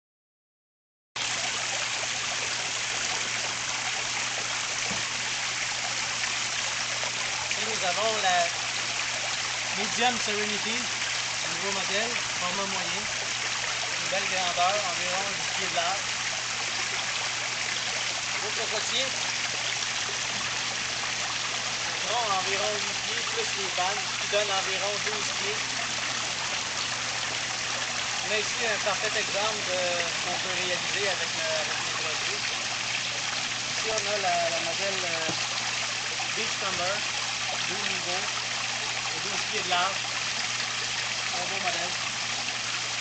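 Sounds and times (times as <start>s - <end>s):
waterfall splashing into pool: 1.2s - 43.0s.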